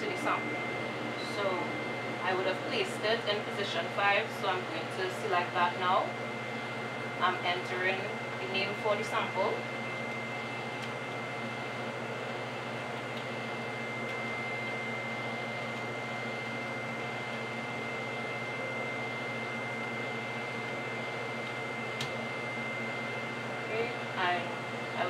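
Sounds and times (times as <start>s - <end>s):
lab equipment and ventilation hum: 0.0s - 25.0s
low electrical hum: 0.0s - 25.0s
click: 21.4s - 22.2s.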